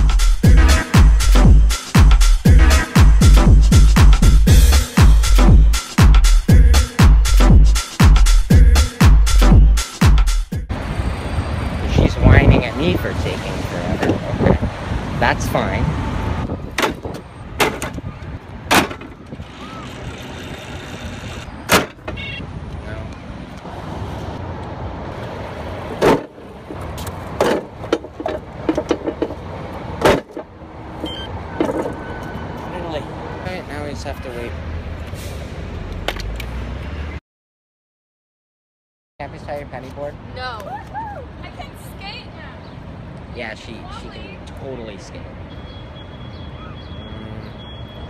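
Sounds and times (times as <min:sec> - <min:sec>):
street traffic noise: 0:00.0 - 0:37.2, 0:39.2 - 0:48.0
wind buffeting microphone: 0:11.7 - 0:20.3
indistinct voices talking: 0:47.0 - 0:47.6.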